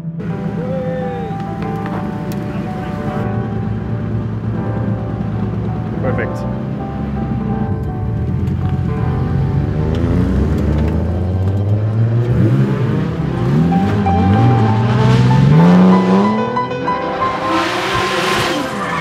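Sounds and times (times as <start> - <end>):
car engine revving: 0.2 - 19.0
tyre squeal: 17.3 - 19.0.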